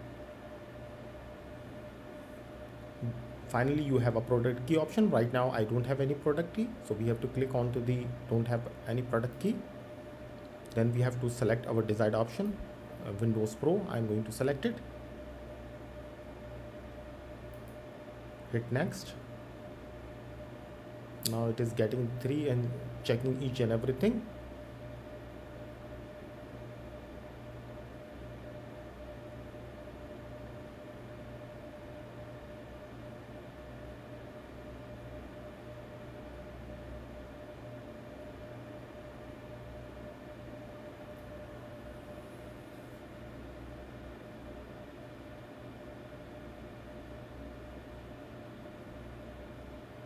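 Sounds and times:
low hum: 0.0 - 50.0.

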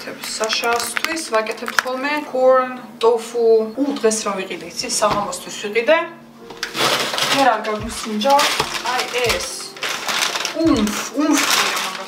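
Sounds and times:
woman talking: 0.0 - 6.2, 7.2 - 9.8, 10.4 - 12.0
plastic bag rustling: 0.1 - 2.0, 6.4 - 12.0
clattering of handled objects: 6.4 - 12.0.

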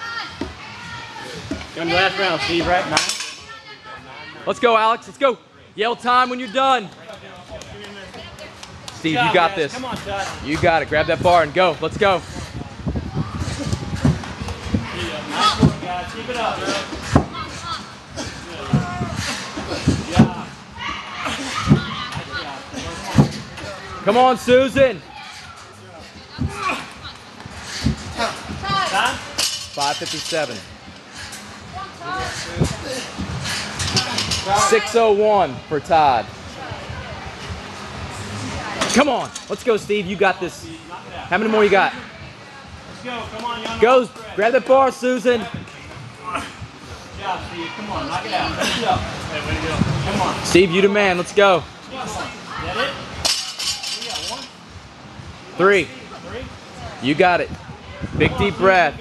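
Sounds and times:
people talking and calling out: 0.0 - 59.0
faint voices: 7.0 - 35.0.

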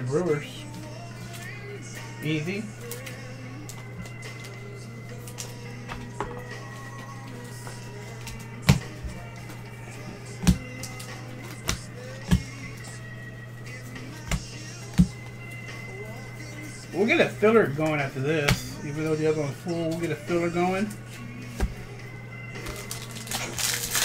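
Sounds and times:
steady low hum: 0.0 - 23.8
faint background music: 0.0 - 24.0.

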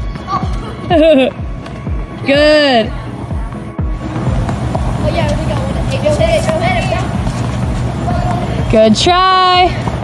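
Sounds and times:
children's voices: 5.0 - 8.7.

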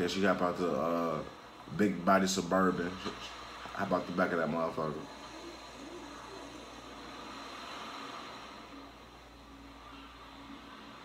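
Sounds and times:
faint ambient hiss: 0.0 - 11.0
low hum: 0.0 - 11.0.

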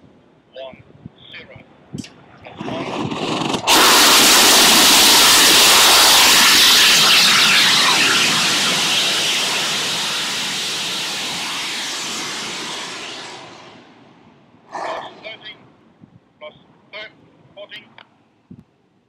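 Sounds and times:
rocket engine roaring: 2.4 - 15.6.

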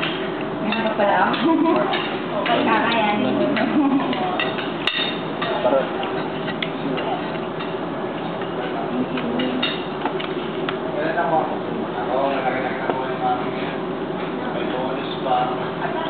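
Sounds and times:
cutlery clinking on plates: 0.0 - 8.5
murmur of chatter: 0.0 - 16.0.

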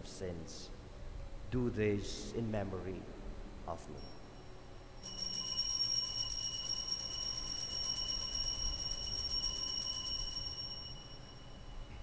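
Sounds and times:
bells jingling: 5.0 - 11.8.

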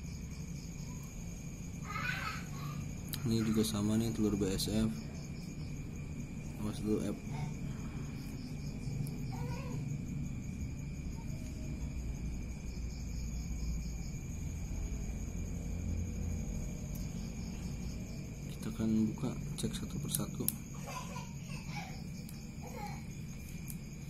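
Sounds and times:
crickets trilling: 0.0 - 24.0
low rumbling background noise: 0.0 - 24.0.

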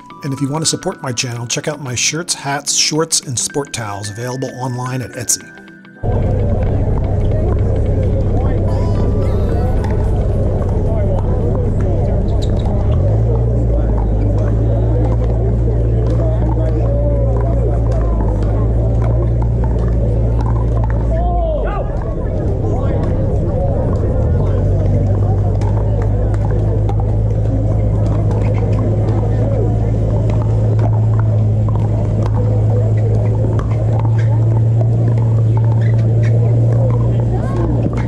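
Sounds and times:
steady low rumble: 6.0 - 37.9
murmur of distant voices: 6.0 - 38.0
steady low hum: 6.0 - 38.0
paddles popping ball: 8.3 - 21.3, 21.9 - 38.0.

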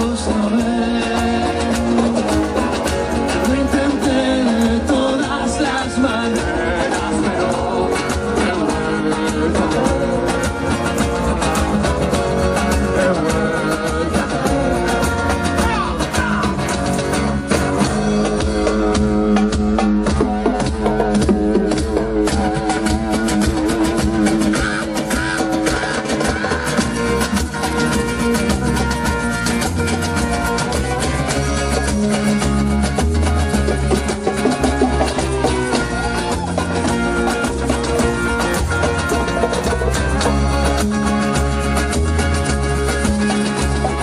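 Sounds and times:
person singing: 0.0 - 2.4, 3.3 - 16.8, 18.2 - 27.2
live rock band playing: 0.0 - 44.0.

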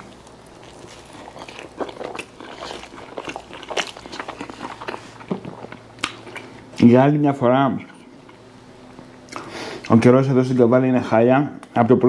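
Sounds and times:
man chewing with crunches: 0.0 - 6.8, 7.8 - 10.0.

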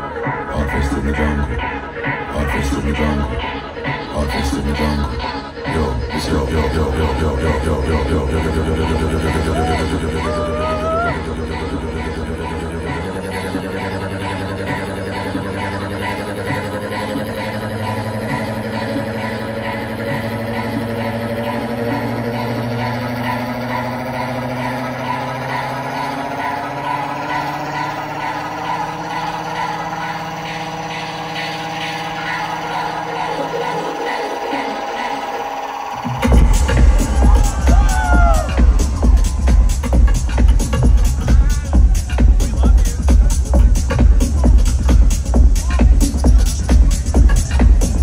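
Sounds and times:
electronic dance music: 0.0 - 48.0.

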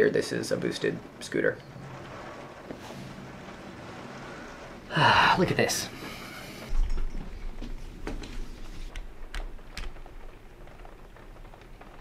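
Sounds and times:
faint raindrop ticks: 0.0 - 12.0
light rain hissing: 0.0 - 12.0.

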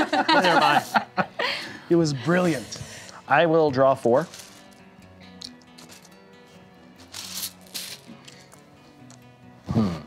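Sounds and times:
soft background music: 0.0 - 10.0
game tokens rattling in bag: 4.2 - 4.8, 5.4 - 6.1, 7.1 - 8.4.

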